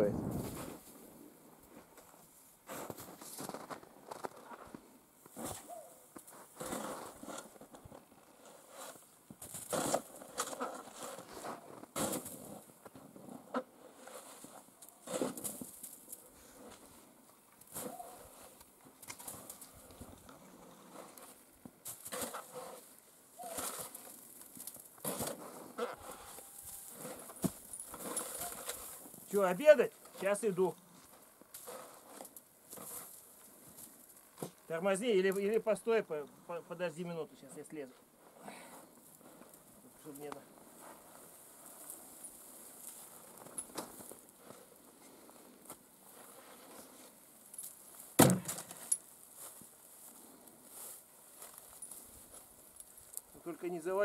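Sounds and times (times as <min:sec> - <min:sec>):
snow shovel scraping snow: 0:06.6 - 0:07.5, 0:13.8 - 0:15.6, 0:22.0 - 0:24.1, 0:25.0 - 0:29.5.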